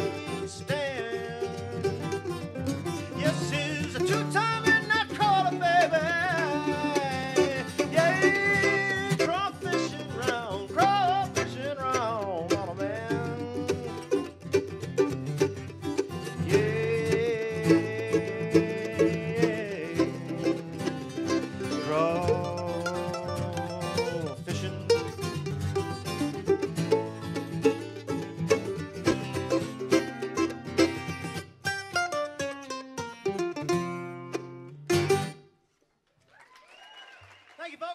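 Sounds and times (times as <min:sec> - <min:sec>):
mandolin: 0:00.0 - 0:35.8
acoustic guitar: 0:00.0 - 0:35.9.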